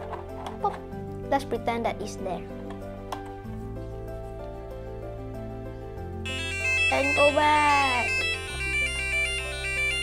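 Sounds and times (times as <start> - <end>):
electronic beeping melody: 6.3 - 10.0.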